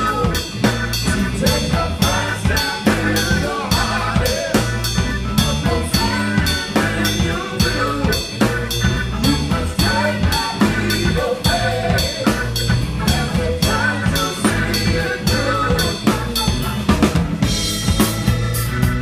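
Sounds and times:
bass and pitched instruments: 0.0 - 19.0
drum kit played with sticks: 0.0 - 19.0.

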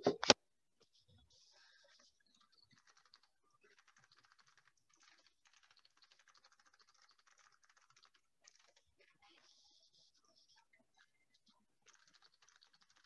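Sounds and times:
typing on computer keyboard: 2.4 - 9.5, 11.8 - 13.0.

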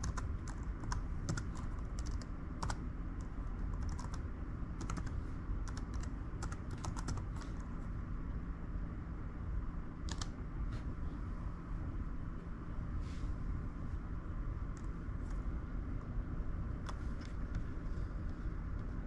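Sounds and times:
typing on laptop keyboard: 0.0 - 4.2, 4.8 - 7.7, 10.1 - 10.4.

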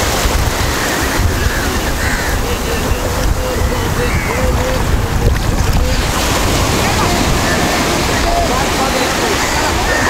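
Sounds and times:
shallow surf washing: 0.0 - 10.0
wind buffeting microphone: 0.0 - 10.0.

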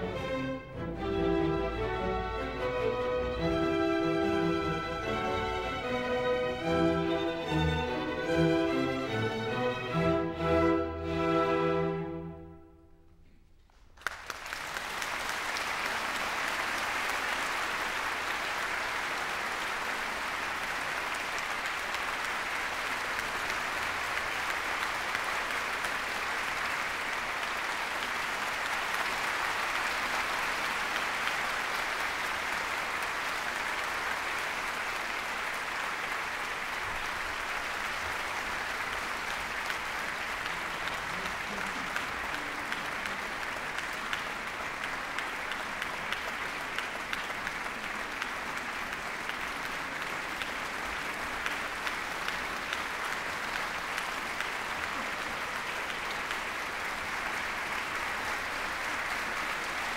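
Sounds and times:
audience applauding: 0.0 - 11.1, 13.6 - 59.9.

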